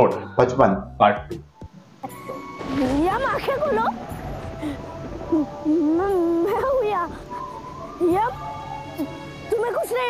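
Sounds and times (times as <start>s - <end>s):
soft steady musical drone: 0.0s - 10.0s.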